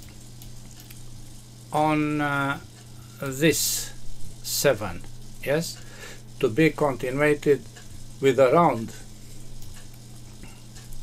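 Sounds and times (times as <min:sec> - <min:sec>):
background hiss: 0:00.0 - 0:11.0
low hum: 0:00.0 - 0:11.0.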